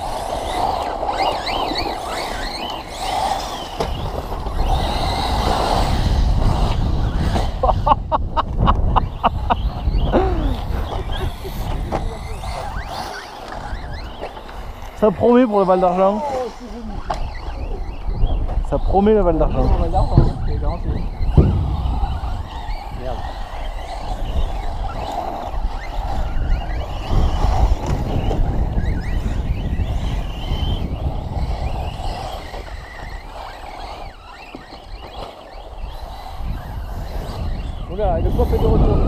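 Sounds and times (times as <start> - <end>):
electric rc car motors whining: 0.0 - 39.0
wind buffeting microphone: 0.0 - 39.0.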